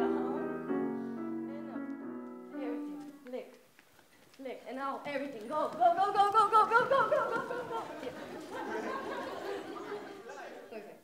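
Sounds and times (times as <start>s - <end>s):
crowd chattering: 5.4s - 11.0s.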